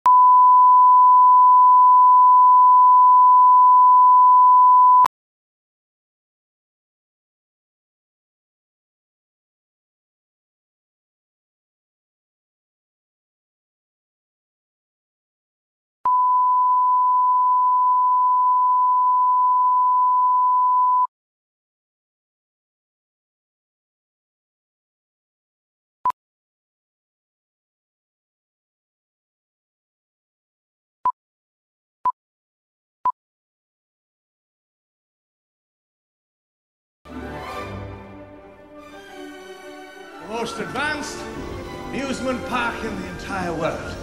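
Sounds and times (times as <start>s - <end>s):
pure line-up tone beep: 0.1s - 5.1s, 16.1s - 21.1s.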